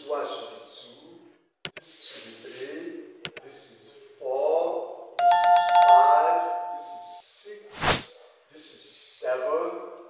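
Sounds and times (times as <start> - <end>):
electronic ringtone chime: 5.2 - 7.2.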